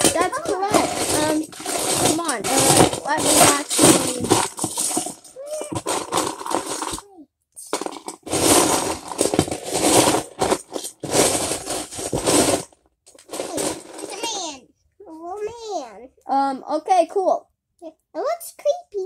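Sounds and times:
plastic bricks clattering: 0:00.0 - 0:14.4.

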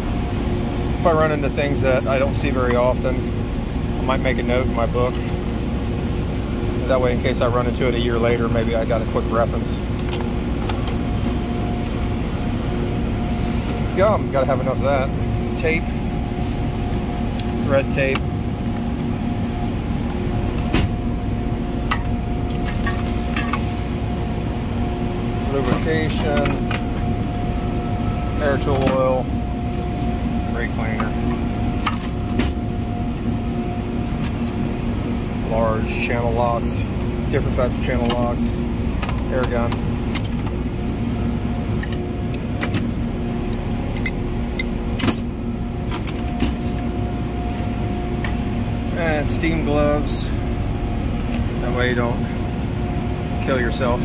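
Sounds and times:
faint constant tone: 0:00.0 - 0:54.0
low machinery hum: 0:00.0 - 0:54.0.

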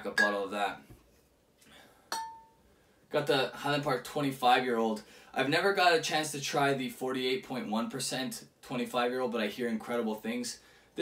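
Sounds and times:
glass bottle clinking: 0:00.1 - 0:00.4, 0:02.1 - 0:02.6.

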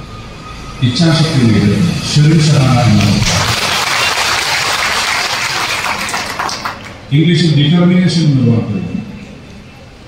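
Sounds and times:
audience applauding: 0:03.0 - 0:07.0.

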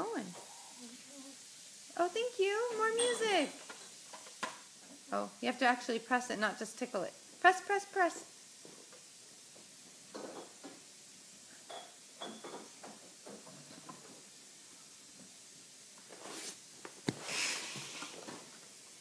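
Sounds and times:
brief hiss: 0:16.1 - 0:18.4.

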